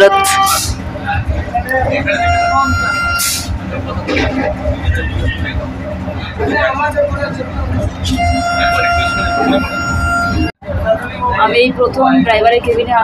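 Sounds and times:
electric train rumbling: 0:00.0 - 0:13.0
low voices: 0:00.0 - 0:13.0
steady pitched tone: 0:01.8 - 0:04.4, 0:07.7 - 0:10.6.

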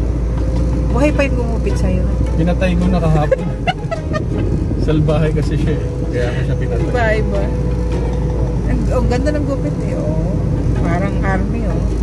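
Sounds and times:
car road and engine rumble: 0:00.0 - 0:12.0
woman's voice: 0:00.9 - 0:02.2, 0:08.6 - 0:12.0.

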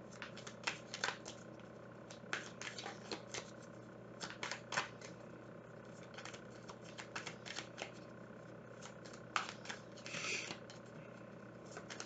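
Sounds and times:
cards being shuffled: 0:00.1 - 0:05.2, 0:05.8 - 0:08.1, 0:08.7 - 0:11.0, 0:11.6 - 0:12.0.

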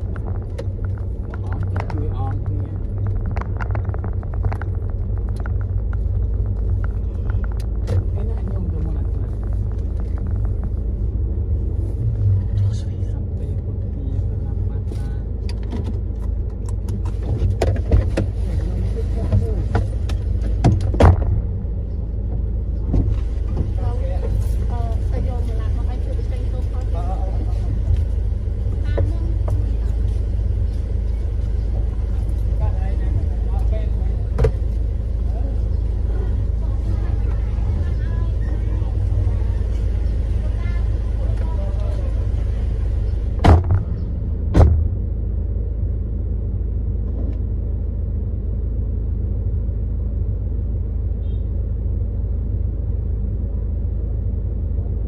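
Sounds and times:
car engine and road rumble: 0:00.0 - 0:55.0
sharp knocks: 0:43.4 - 0:45.0.

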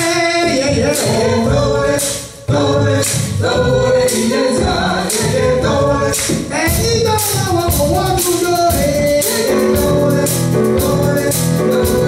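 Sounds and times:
band and percussion: 0:00.0 - 0:12.0.

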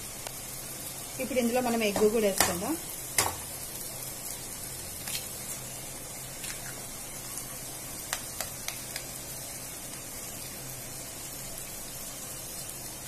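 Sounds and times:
vegetables and eggs sizzling in oil: 0:00.0 - 0:13.0.

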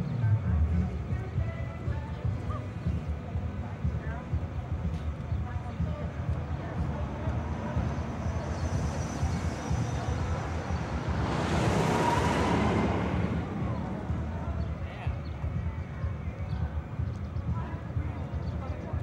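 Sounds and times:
indistinct voices: 0:00.0 - 0:19.0
steady low rumble: 0:00.0 - 0:19.0
vehicle passing: 0:06.2 - 0:15.6.

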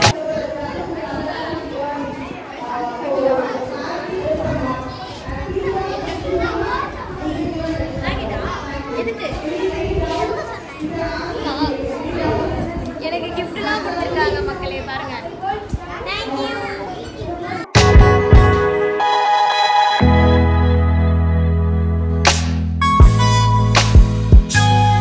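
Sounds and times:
children chattering: 0:00.0 - 0:20.1
loud background music: 0:17.8 - 0:25.0.

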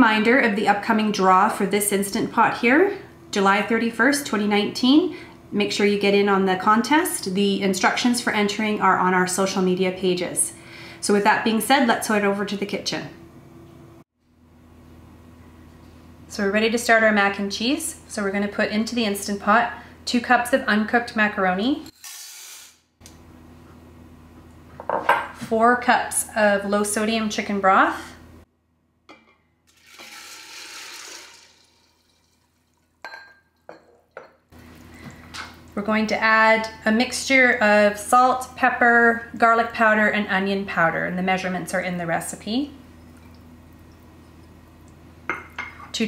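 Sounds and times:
low room hum: 0:00.0 - 0:46.0
dry pasta pouring into metal pot: 0:29.7 - 0:33.0.

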